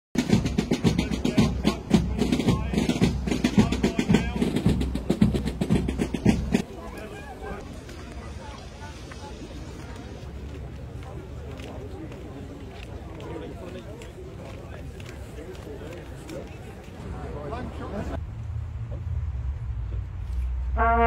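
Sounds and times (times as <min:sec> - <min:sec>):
marching drums: 0:00.2 - 0:06.7
voices outdoors: 0:00.2 - 0:21.0.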